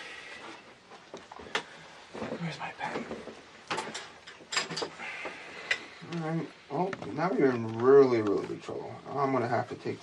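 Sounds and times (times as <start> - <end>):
objects clattering on a desk: 1.1 - 5.9.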